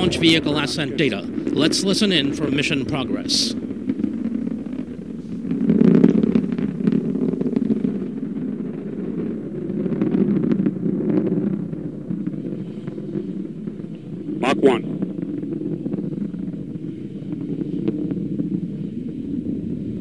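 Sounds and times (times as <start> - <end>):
distant rocket engine rumble: 0.0 - 20.0.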